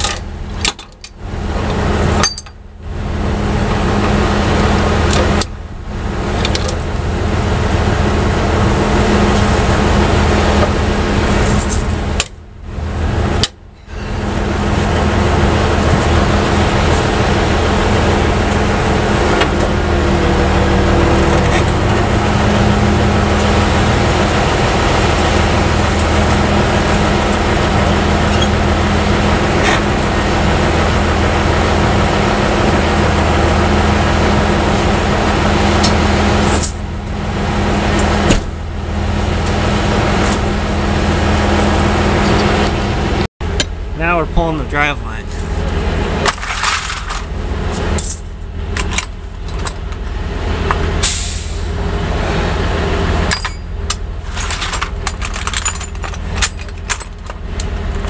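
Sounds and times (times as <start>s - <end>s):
truck diesel engine running: 0.0s - 58.0s.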